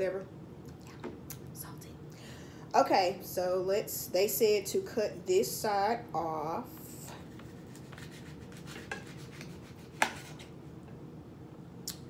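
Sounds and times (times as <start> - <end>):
knife sawing through fruit skin: 7.5 - 10.4.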